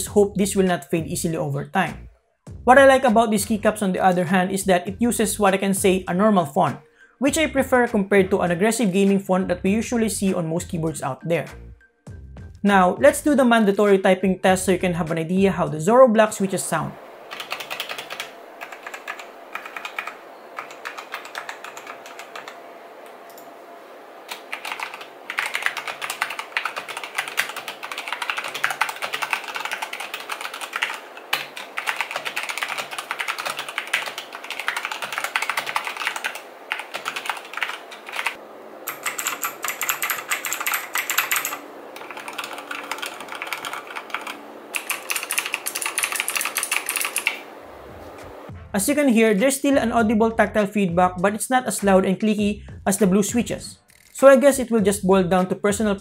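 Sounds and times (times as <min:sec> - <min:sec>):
fast typing on mechanical keyboard: 0:17.3 - 0:22.6, 0:24.3 - 0:47.4.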